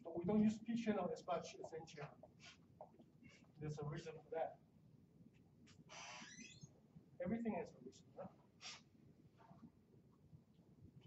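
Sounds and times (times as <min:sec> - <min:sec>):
marker squeaking on whiteboard: 0:01.6 - 0:03.6, 0:05.6 - 0:06.7, 0:08.6 - 0:09.6.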